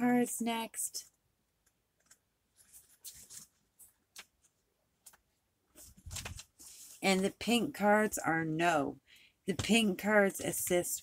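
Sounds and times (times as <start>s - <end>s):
book pages being leafed through: 5.8s - 7.2s.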